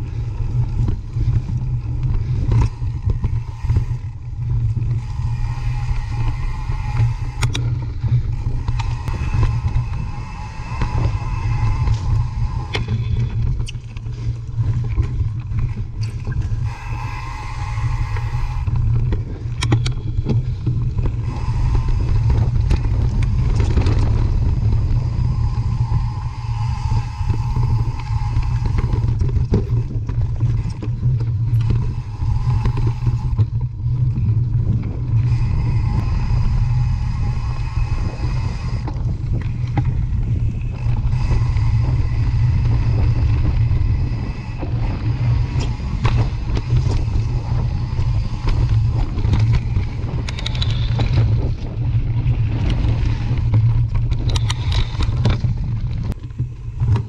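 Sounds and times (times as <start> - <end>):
bike knocking and rattling: 0.0 - 17.1, 17.9 - 37.5, 38.8 - 57.0
wind noise on microphone: 0.0 - 57.0.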